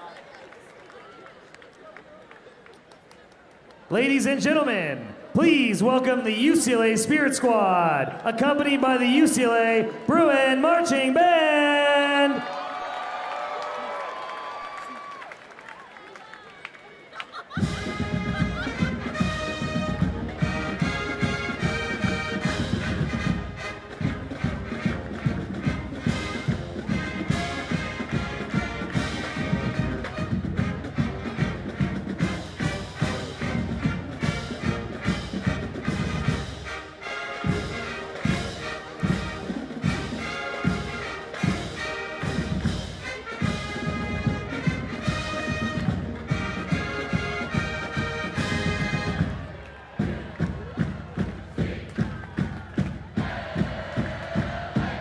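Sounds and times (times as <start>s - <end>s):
marching band playing: 3.9s - 12.4s, 17.3s - 55.0s.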